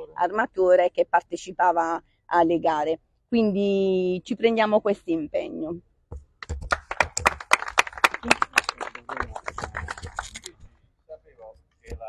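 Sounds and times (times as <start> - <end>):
small audience applause: 6.4 - 10.5.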